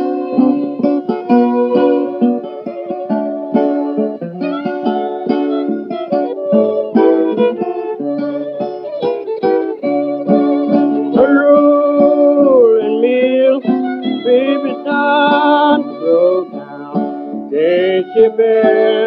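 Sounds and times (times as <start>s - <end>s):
acoustic guitar picking: 0.0s - 19.0s
held bending guitar note: 0.0s - 19.0s.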